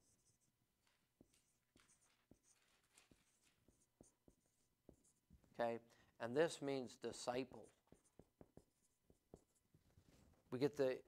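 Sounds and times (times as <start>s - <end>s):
marker squeaking on whiteboard: 0.0s - 5.5s, 7.1s - 10.3s.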